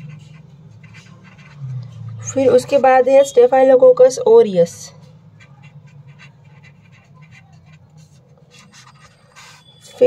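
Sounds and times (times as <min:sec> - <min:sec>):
pen scratching on paper: 0:00.0 - 0:01.7, 0:05.3 - 0:10.0
low steady hum: 0:00.0 - 0:10.0.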